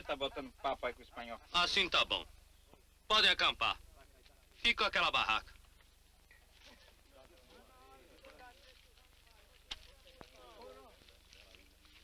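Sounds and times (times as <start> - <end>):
faint voices: 5.4 - 12.0.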